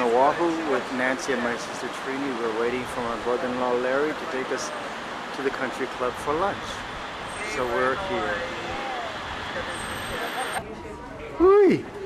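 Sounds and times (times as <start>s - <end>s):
faint voices: 0.0s - 12.0s
traffic noise: 0.0s - 12.0s.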